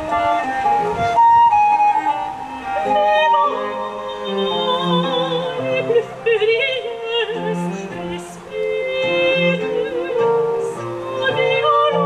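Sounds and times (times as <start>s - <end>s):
soprano singing with vibrato: 0.0s - 12.0s
viola da gamba low notes: 0.0s - 12.0s.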